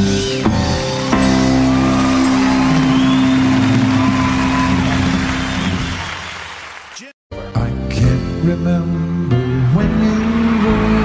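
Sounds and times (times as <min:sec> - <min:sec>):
live band holding chord: 0:00.3 - 0:06.2.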